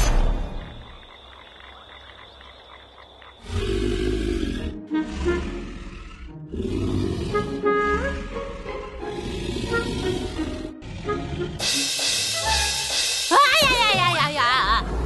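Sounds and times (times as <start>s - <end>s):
cartoon dinosaur snoring: 3.4s - 12.6s.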